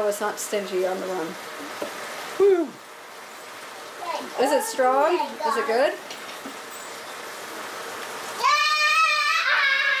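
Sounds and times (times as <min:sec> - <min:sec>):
faint steady hiss: 0:00.0 - 0:10.0
person's high vocal exclamation: 0:08.4 - 0:10.0.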